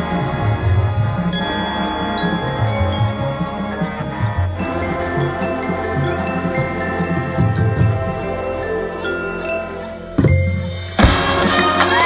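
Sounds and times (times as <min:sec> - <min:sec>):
marching band music: 0:00.0 - 0:12.0
chimes and mallet percussion: 0:01.1 - 0:12.0.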